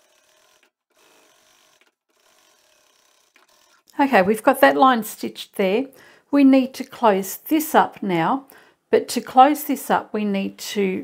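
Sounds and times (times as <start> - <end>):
sewing machine stitching: 0.0 - 4.3.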